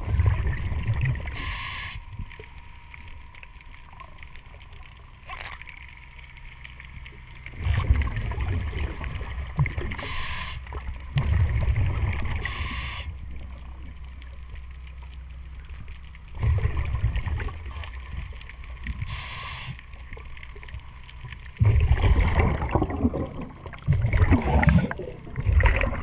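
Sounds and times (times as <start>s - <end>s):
exhaled bubbles rumbling: 0.0s - 26.0s
regulator hissing inhalations: 1.4s - 2.0s, 10.0s - 10.7s, 12.4s - 13.1s, 19.1s - 19.8s.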